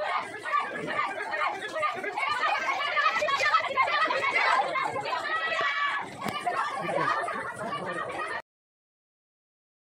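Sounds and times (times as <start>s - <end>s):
crowd chatter: 0.0s - 8.4s
women ululating: 0.0s - 8.4s.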